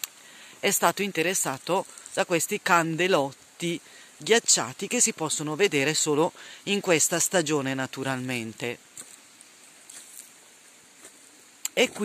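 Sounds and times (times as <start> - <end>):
faint rustles and ticks: 0.0 - 12.0
outdoor background hiss: 0.0 - 12.0.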